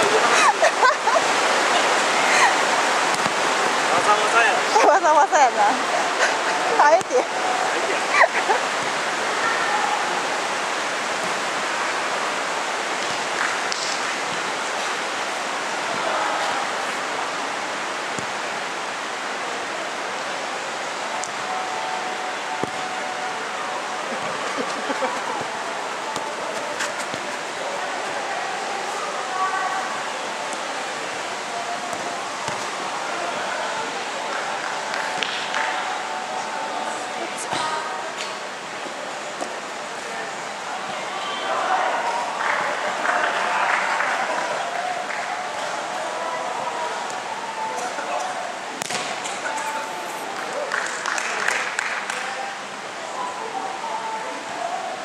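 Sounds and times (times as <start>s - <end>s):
rushing hall noise: 0.0s - 55.0s.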